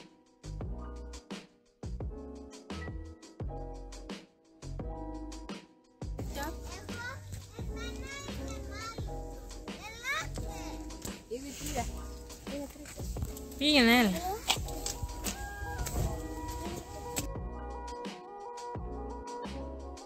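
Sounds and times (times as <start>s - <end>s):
background music: 0.0s - 20.0s
children calling and chattering: 6.3s - 17.3s
child shouting: 6.7s - 11.0s, 15.1s - 16.9s.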